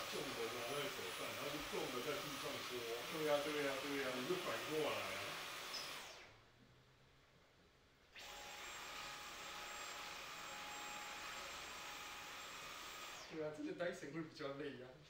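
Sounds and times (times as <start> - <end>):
stick vacuum running: 0.0 - 6.3.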